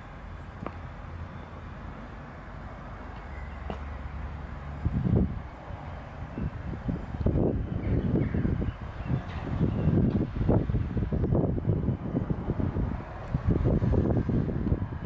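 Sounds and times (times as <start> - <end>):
wind buffeting microphone: 4.6 - 15.0.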